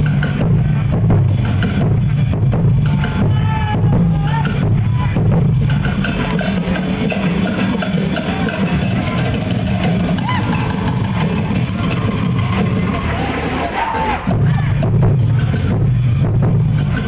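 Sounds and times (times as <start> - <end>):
drum-driven music: 0.0 - 17.0
people shouting: 2.8 - 5.3, 7.6 - 14.8.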